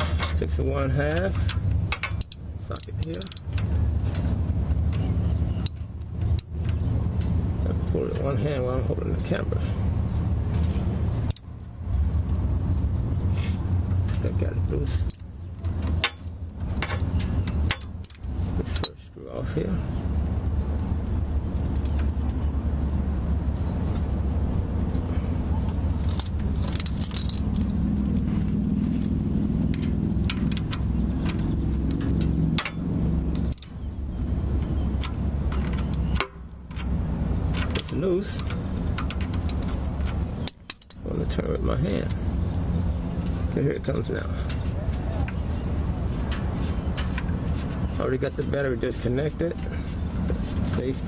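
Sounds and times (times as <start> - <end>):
steady low rumble: 0.0 - 51.0
metal tools clinking: 1.1 - 4.2, 14.0 - 19.1, 25.6 - 27.9, 29.8 - 33.9, 34.6 - 41.4
socket ratchet clicking: 2.0 - 3.6.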